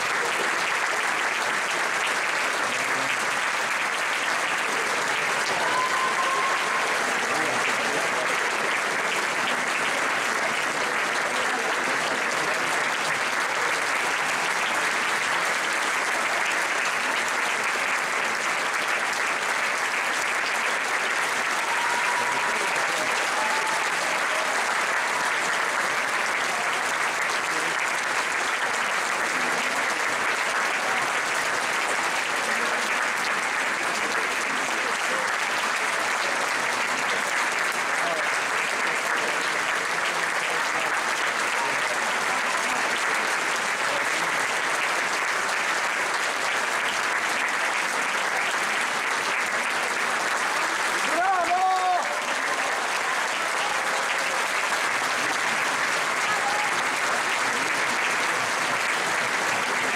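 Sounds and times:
audience applauding: 0:00.0 - 0:59.9
calls from audience: 0:00.0 - 0:59.9.

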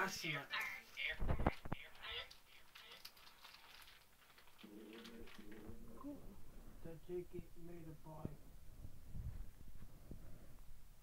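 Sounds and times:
faint low voices whispering: 0:04.5 - 0:08.4.

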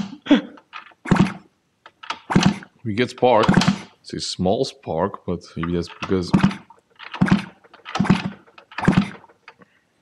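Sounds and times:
moped engine turning over: 0:00.0 - 0:03.9, 0:05.6 - 0:09.5.

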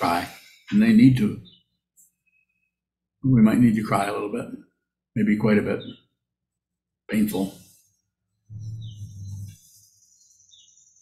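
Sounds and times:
small chirps: 0:07.5 - 0:11.0.

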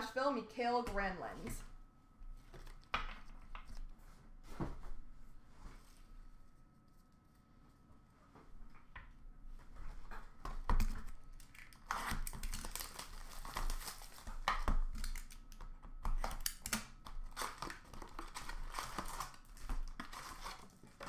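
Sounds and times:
packaging crinkling and rustling: 0:09.8 - 0:21.0.

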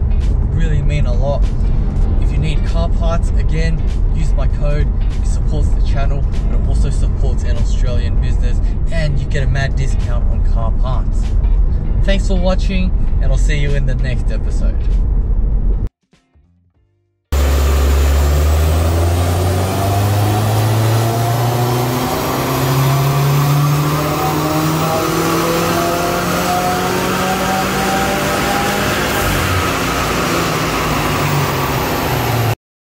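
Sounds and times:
car engine revving under load: 0:17.4 - 0:32.6.

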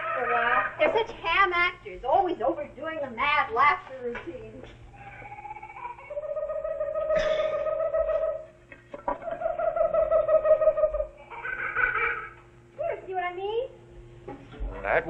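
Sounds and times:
low steady hum: 0:00.0 - 0:15.0
man imitating a loon call: 0:05.6 - 0:08.5.

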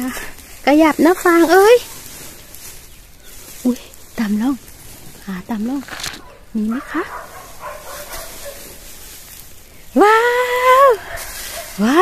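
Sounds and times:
dry straw rustling: 0:00.0 - 0:12.0.

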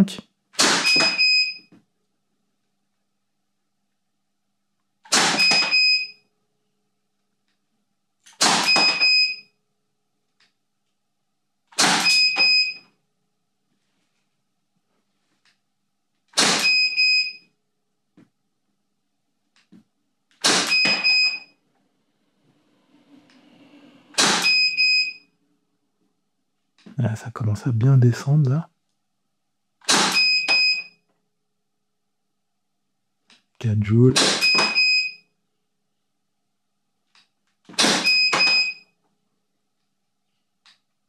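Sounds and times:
air pistol shots: 0:00.6 - 0:01.2, 0:05.1 - 0:05.7, 0:08.3 - 0:09.0, 0:11.7 - 0:12.2, 0:16.3 - 0:16.8, 0:20.4 - 0:21.1, 0:24.2 - 0:24.6, 0:29.8 - 0:30.3, 0:34.1 - 0:34.8, 0:37.7 - 0:38.6.

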